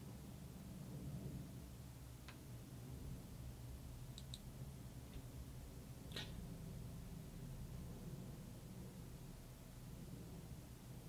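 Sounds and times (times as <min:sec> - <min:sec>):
low steady room hum: 0:00.0 - 0:11.0
faint quick clicks: 0:04.1 - 0:04.4.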